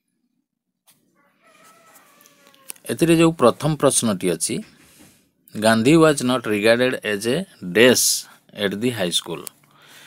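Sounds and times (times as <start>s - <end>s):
man talking: 2.8s - 4.8s, 5.5s - 9.6s.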